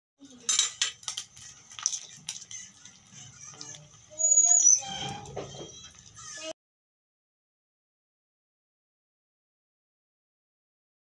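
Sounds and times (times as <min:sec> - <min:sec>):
eggshells cracking against steel bowl: 0:00.4 - 0:03.0
brief high squeak: 0:04.2 - 0:05.7.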